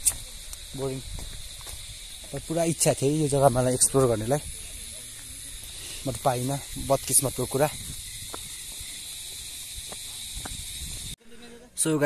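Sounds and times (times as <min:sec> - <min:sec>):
wind rumble on microphone: 0:00.0 - 0:02.6, 0:03.4 - 0:11.2
faint footsteps: 0:00.0 - 0:02.8, 0:07.7 - 0:11.2
high-pitched insect drone: 0:00.0 - 0:12.0.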